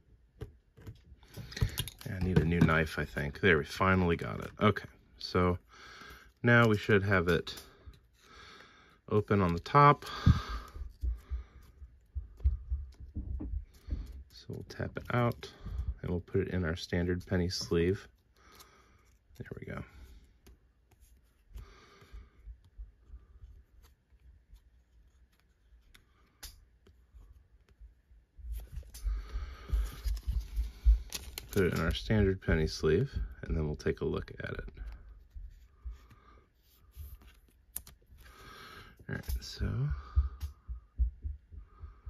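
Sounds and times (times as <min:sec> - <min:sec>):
plastic rustling and bumps: 0:00.3 - 0:04.8, 0:09.3 - 0:18.0
soft low thumps: 0:10.1 - 0:14.2, 0:39.8 - 0:42.0
plastic sleeve rustle: 0:28.5 - 0:32.8.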